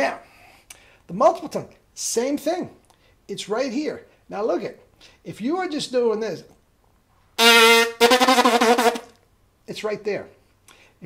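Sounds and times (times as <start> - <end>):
brass buzzed note: 7.4 - 9.1
tongued repeated brass notes: 7.4 - 9.2.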